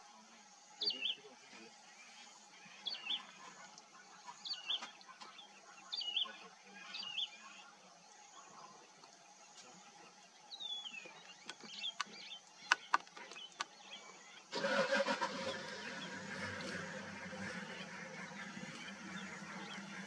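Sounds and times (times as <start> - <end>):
birds chirping: 0.0 - 20.0
vehicle engine idling: 14.5 - 20.0.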